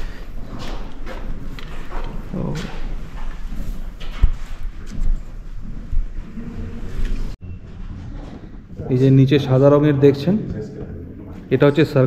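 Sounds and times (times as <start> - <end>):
footsteps: 0.0 - 9.1
noisy background: 0.0 - 12.0.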